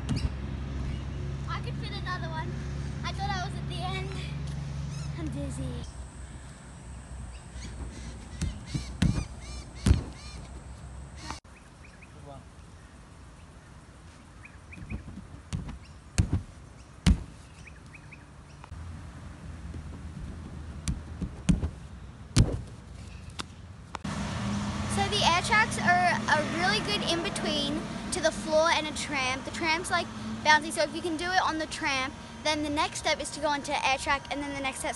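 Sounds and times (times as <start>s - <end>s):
faint birds calling: 4.6s - 15.2s, 15.8s - 18.7s
thuds on inflatable air track: 14.8s - 17.4s, 19.7s - 22.8s.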